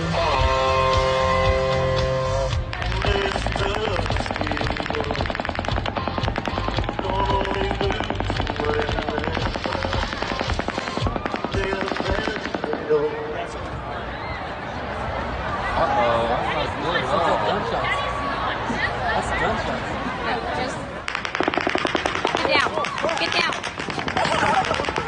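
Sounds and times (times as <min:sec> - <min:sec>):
electric guitar concert music: 0:00.0 - 0:13.1
voices calling out: 0:00.0 - 0:25.0
rapid automatic gunfire: 0:02.7 - 0:13.0, 0:21.1 - 0:25.0.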